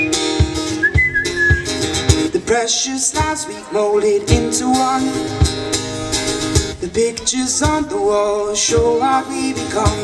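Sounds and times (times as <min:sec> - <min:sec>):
whistled melody: 0:00.0 - 0:01.8
acoustic guitar strumming: 0:00.0 - 0:10.0.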